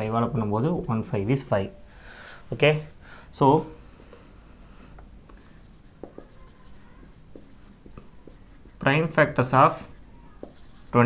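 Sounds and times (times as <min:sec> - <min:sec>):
marker squeaking on whiteboard: 0:05.3 - 0:11.0.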